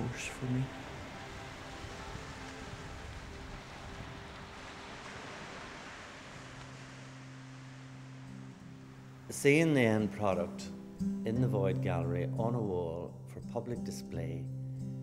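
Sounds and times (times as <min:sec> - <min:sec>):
surf breaking on beach: 0:00.0 - 0:10.2.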